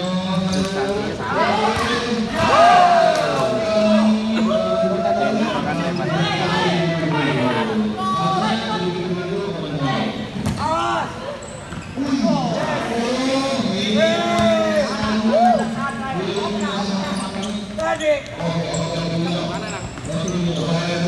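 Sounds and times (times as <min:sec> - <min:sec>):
players and spectators shouting: 0:01.2 - 0:08.8
ball kicked and bouncing indoors: 0:14.2 - 0:14.7.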